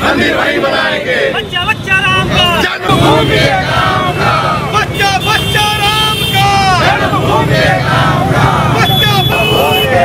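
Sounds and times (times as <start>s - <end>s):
crowd chanting in unison: 0.0s - 1.6s, 2.2s - 5.0s, 6.4s - 10.0s
motorcycles idling: 1.6s - 10.0s.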